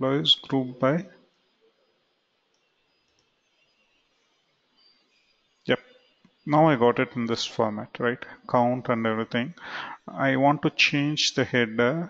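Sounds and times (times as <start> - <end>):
very faint clicks: 2.4 - 3.6.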